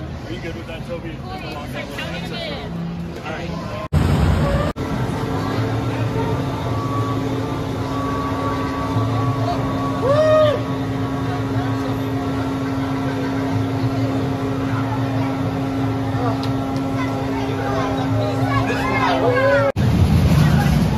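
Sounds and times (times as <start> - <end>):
roller coaster machinery humming: 0.0 - 20.9.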